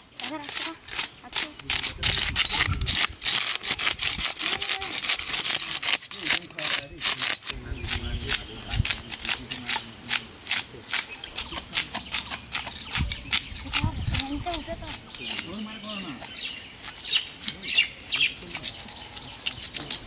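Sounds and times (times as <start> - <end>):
knives scraping fish scales: 0.2 - 15.6, 16.2 - 20.0
boys talking: 0.2 - 16.5.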